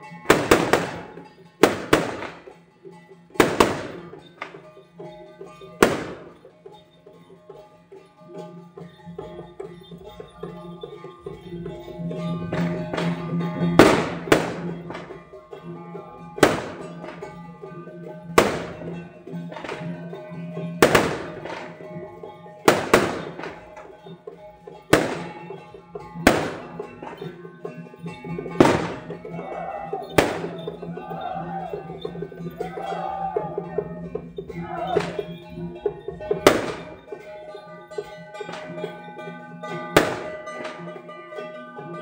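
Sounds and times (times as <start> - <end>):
wavering melody: 0.0 - 42.0.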